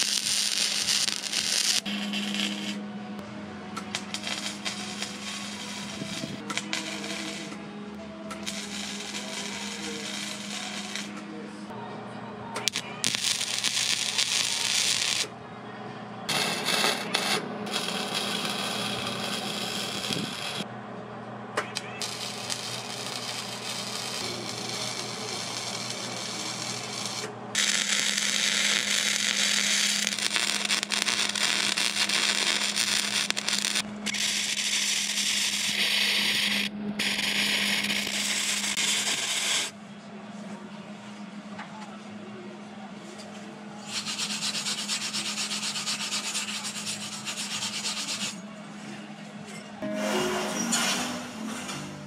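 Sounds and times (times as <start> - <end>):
welder crackling hiss: 0.0 - 2.8, 3.8 - 7.6, 8.4 - 11.2, 12.6 - 15.3, 16.3 - 20.6, 21.8 - 39.7, 43.9 - 48.3
steady low hum: 0.0 - 41.5.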